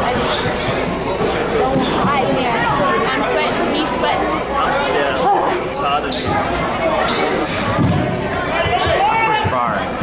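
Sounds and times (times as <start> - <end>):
spectators' voices: 0.0 - 10.0.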